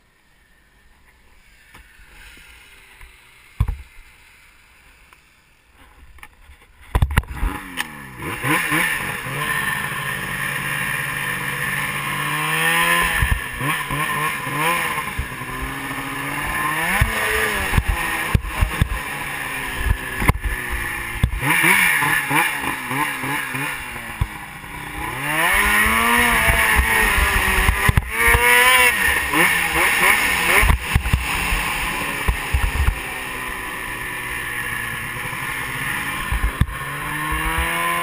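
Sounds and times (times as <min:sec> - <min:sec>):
snowmobile engine revving: 0:06.9 - 0:38.0.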